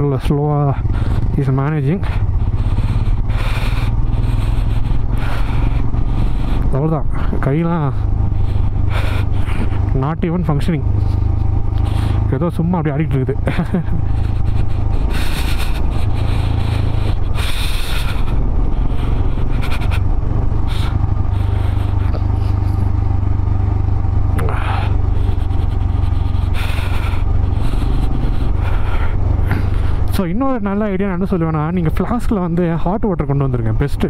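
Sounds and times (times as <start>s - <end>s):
motorcycle engine running: 0.0s - 34.0s.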